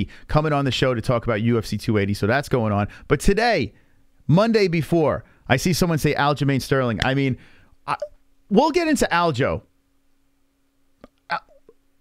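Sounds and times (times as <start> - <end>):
faint steady hum: 0.0 - 12.0
sharp catch of breath: 7.4 - 7.8.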